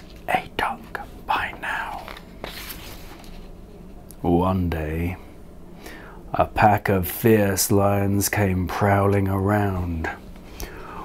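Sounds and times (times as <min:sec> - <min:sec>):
man whispering: 0:00.2 - 0:02.2
book page turning: 0:01.9 - 0:03.6.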